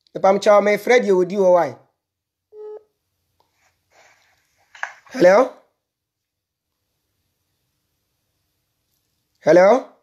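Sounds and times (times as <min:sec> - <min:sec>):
short electronic phone beep: 0:02.5 - 0:02.9.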